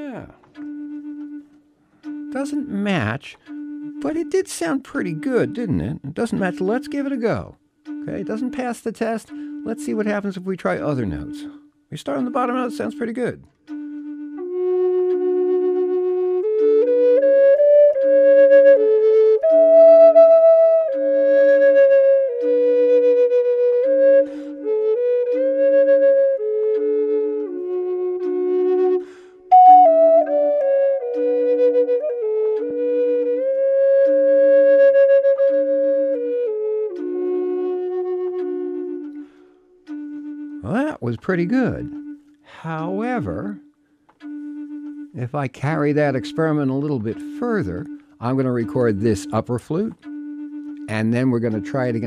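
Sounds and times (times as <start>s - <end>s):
flute playing slow melody: 0.0s - 52.0s
low flute note pulses: 0.1s - 52.0s.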